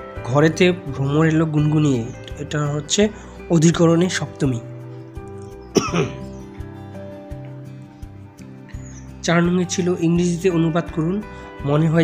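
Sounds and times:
soft music with held tones: 0:00.0 - 0:12.0
person coughing: 0:05.7 - 0:06.3.

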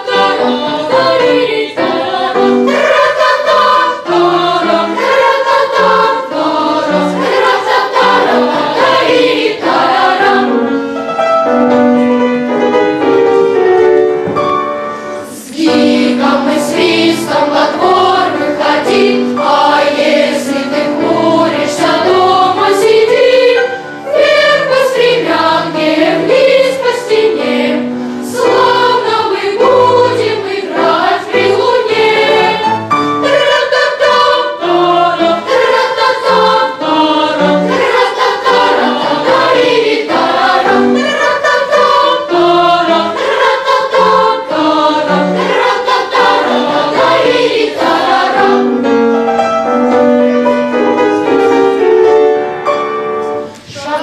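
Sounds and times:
boys' choir singing: 0:00.0 - 0:10.8, 0:15.2 - 0:49.0, 0:53.7 - 0:54.0.

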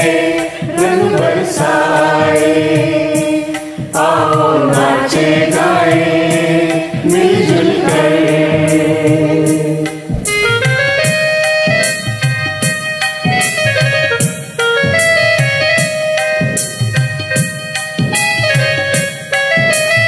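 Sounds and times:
group singing: 0:00.0 - 0:10.4
keyboard backing music: 0:00.0 - 0:20.0.

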